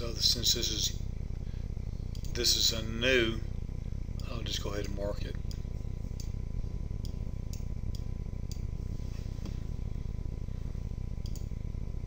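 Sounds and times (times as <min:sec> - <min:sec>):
steady low hum: 0:00.0 - 0:12.0
computer mouse clicks: 0:11.2 - 0:11.5.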